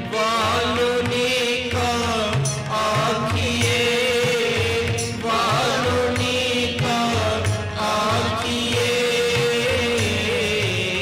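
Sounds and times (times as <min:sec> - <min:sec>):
harmoniums holding chords: 0:00.0 - 0:11.0
man singing: 0:00.0 - 0:11.0
tabla drum strokes: 0:00.0 - 0:11.0.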